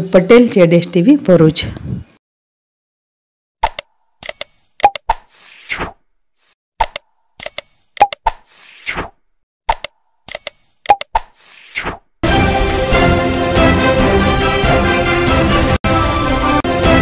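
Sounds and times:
sharp clicks: 3.6 - 5.3, 6.8 - 8.4, 9.7 - 11.4.

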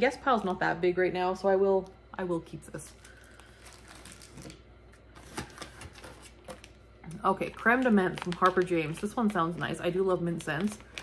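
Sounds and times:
packages clicking and rustling: 3.0 - 4.6, 5.2 - 6.8, 7.4 - 11.0.

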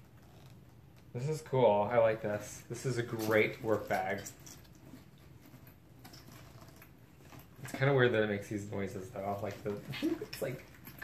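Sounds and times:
leather creaking and rubbing: 0.0 - 1.3, 2.7 - 11.0.

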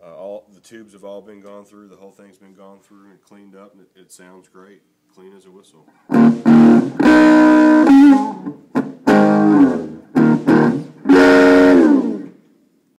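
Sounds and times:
electric guitar chords: 6.0 - 12.4.

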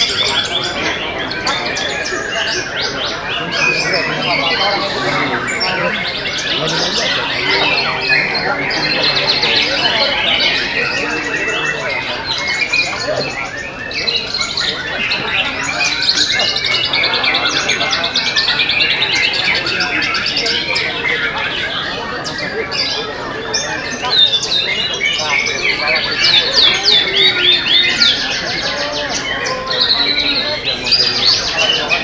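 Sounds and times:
birds trilling and whistling: 0.0 - 32.0.

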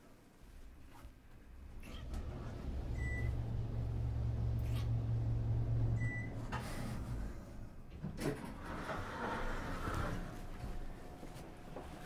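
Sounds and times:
low steady rumble: 1.5 - 8.0.

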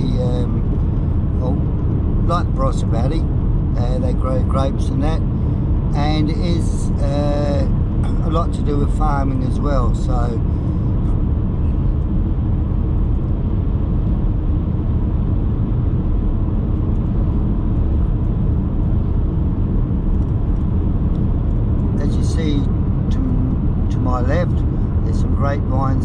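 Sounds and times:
man's voice: 0.0 - 0.7, 2.3 - 3.2, 3.8 - 5.2, 5.9 - 10.4, 22.0 - 26.0
car cabin road rumble: 0.0 - 26.0.

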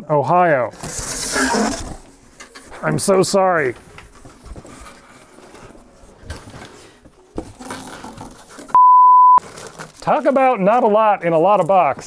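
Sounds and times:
cardboard rustling and scraping: 0.7 - 2.8, 3.7 - 8.8, 9.4 - 12.0.

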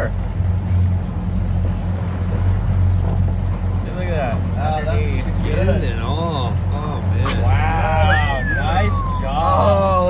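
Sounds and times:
men exclaiming: 7.3 - 10.0.

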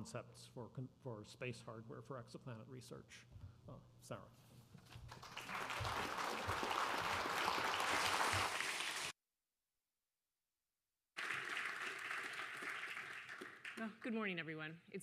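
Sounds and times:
audience applauding: 5.1 - 9.1, 11.2 - 14.0.

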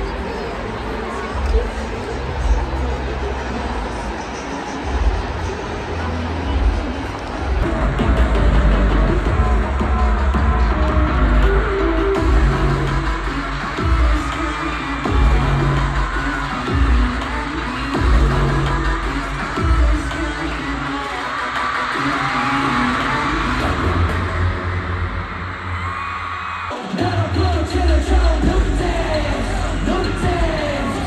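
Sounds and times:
crowd cheering and screaming: 0.0 - 31.0
loud pop concert music: 0.0 - 31.0.

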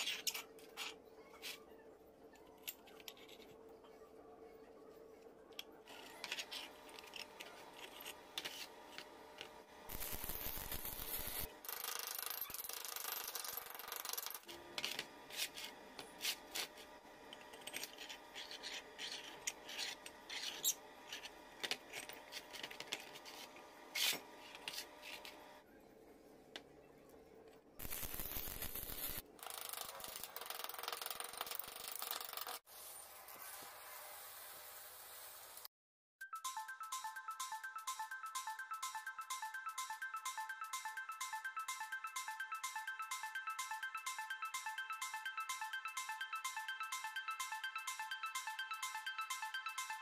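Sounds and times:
metal scraping and rubbing: 17.5 - 25.4.

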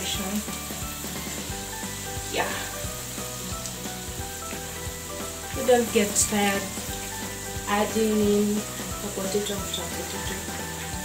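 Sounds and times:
potato slices deep-frying in oil: 0.0 - 11.0.

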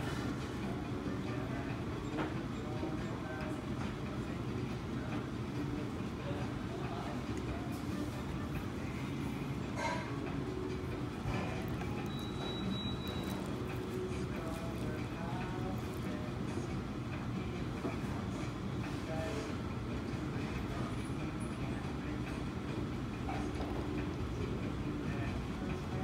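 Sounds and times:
faint indistinct voices: 0.0 - 26.0
low room rumble: 0.0 - 26.0.

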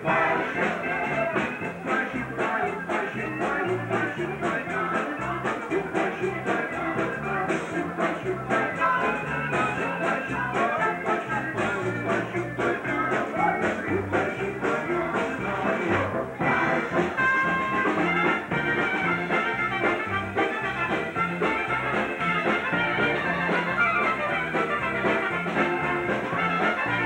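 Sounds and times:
trumpets: 0.0 - 3.1, 15.8 - 27.0
accordion: 0.0 - 27.0
bass line: 0.0 - 27.0.

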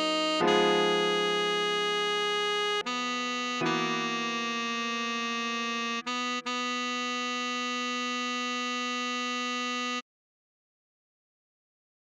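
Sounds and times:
tenor saxophone long note: 0.0 - 10.0.

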